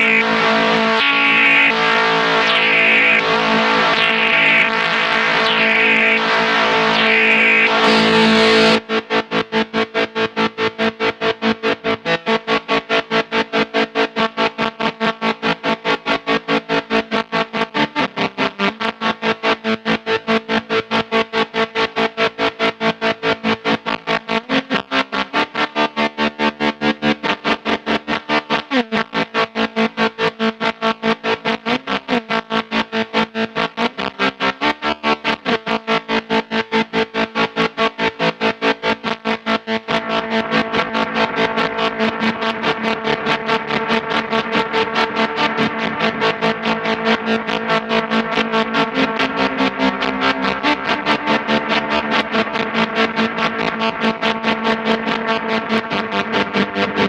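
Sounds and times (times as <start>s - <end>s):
pulsing fuzz electric guitar: 0.0s - 57.0s.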